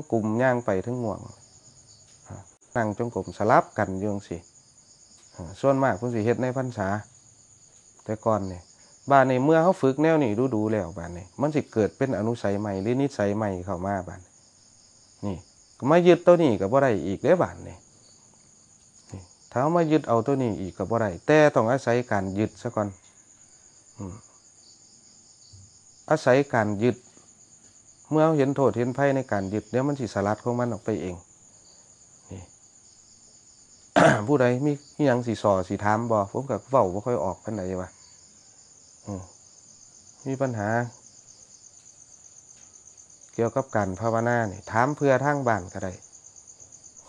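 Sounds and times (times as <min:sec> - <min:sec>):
crickets chirring: 0:00.0 - 0:47.0
person speaking: 0:19.1 - 0:22.9, 0:24.0 - 0:24.2.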